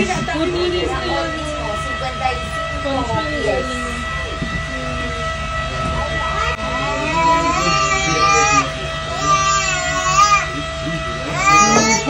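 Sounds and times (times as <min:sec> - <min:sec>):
boat motor whining and rumbling: 0:00.0 - 0:12.0
faint voices: 0:00.0 - 0:12.0.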